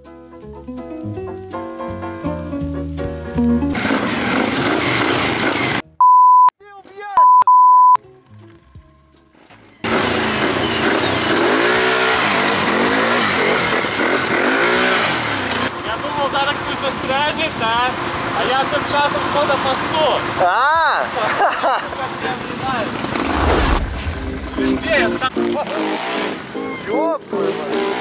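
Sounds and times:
music: 0.0 - 3.8, 8.0 - 9.8, 23.7 - 28.0
quad bike engines revving: 3.8 - 5.8, 9.8 - 28.0
loud steady bleep tone: 6.0 - 6.5, 7.2 - 8.0
person speaking: 24.6 - 25.4.

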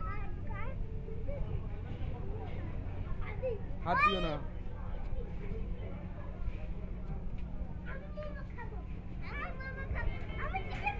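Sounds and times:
children calling and talking: 0.0 - 10.9.

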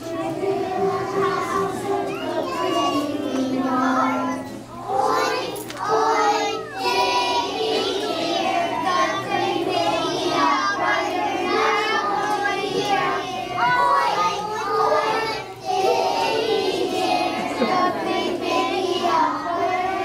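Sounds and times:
children singing in unison: 0.0 - 20.0.

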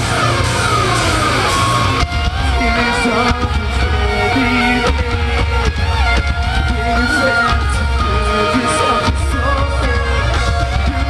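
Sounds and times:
high pitched sliding line: 0.0 - 11.0
rock band playing live: 0.0 - 11.0.

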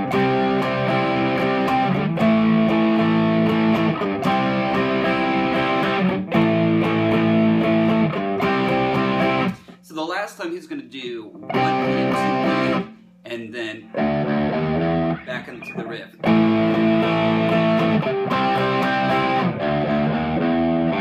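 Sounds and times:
electric guitar strumming chords: 0.0 - 9.8, 11.3 - 21.0.

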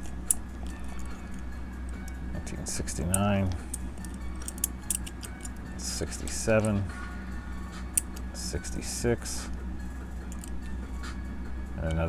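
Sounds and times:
coins clicking together: 0.0 - 6.8, 7.9 - 8.7
steady low hum: 0.0 - 12.0.

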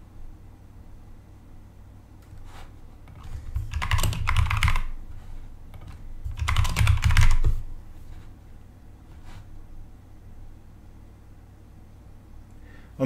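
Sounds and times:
typing on computer keyboard: 3.1 - 5.0, 5.7 - 7.6.

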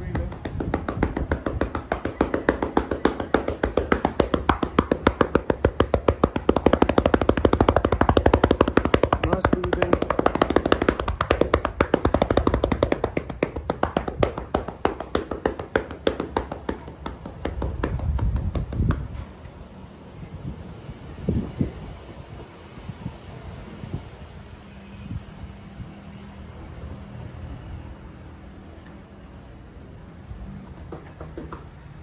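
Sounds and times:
hands patting on towel: 0.1 - 19.2.

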